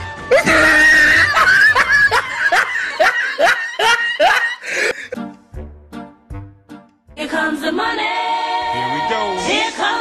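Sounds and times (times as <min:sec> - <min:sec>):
person laughing in bursts: 0:00.3 - 0:05.2.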